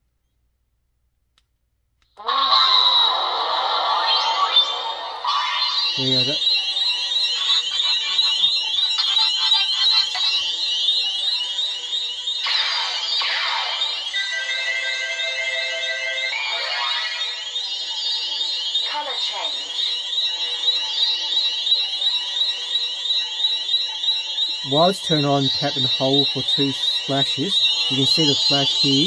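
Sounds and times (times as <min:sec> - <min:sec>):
rapid high electronic chirping: 0:03.9 - 0:29.0.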